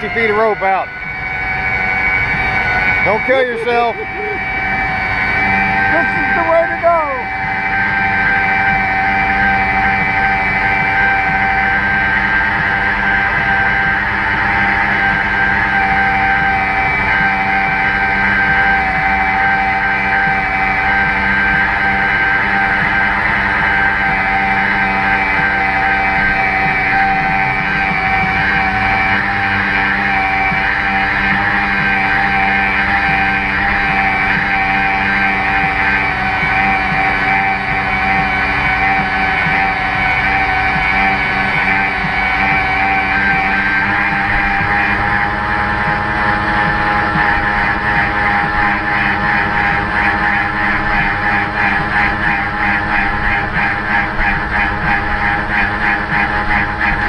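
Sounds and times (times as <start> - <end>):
electric winch motor whine: 0.0 - 57.0
man laughing: 3.2 - 4.8, 5.8 - 7.2.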